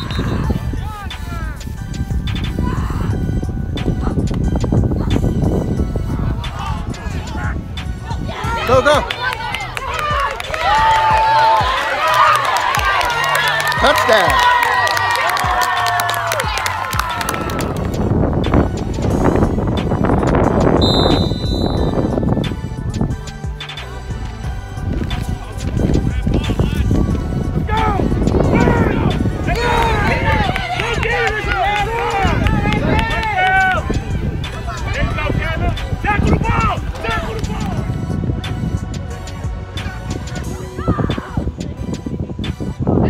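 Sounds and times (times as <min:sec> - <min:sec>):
wind buffeting microphone: 0:00.0 - 0:11.6, 0:16.9 - 0:43.0
hip-hop beat: 0:00.0 - 0:14.6, 0:17.8 - 0:43.0
people shouting: 0:06.5 - 0:17.3, 0:27.6 - 0:33.8.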